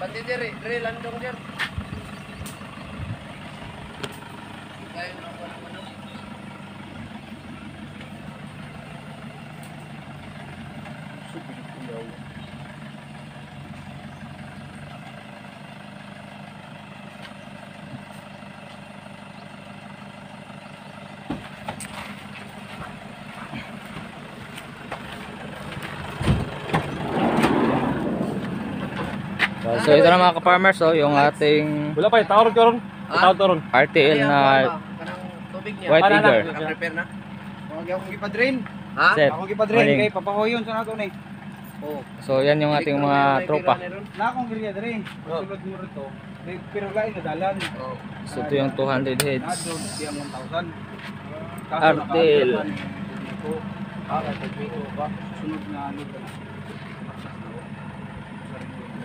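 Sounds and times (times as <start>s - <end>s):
van engine running at low revs: 0.0s - 59.0s
loud rushing noise: 26.2s - 29.5s.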